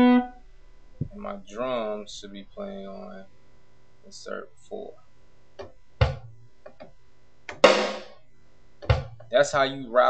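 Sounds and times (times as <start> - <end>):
deep kick drum hits: 6.0 - 6.4, 8.9 - 9.2
drum hit with ringing decay: 7.6 - 8.2.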